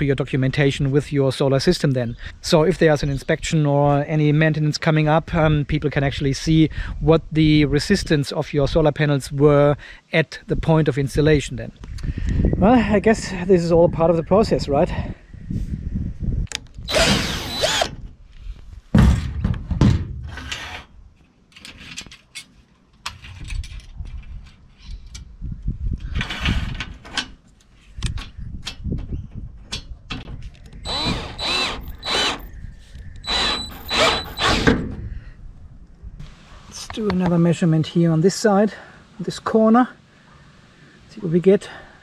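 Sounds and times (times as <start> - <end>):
cordless drill whining: 16.9 - 18.0, 30.8 - 32.5, 33.2 - 34.7.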